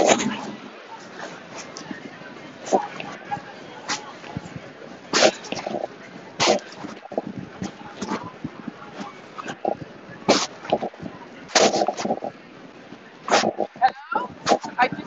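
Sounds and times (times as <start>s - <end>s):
distorted audio bursts: 0.0s - 15.0s.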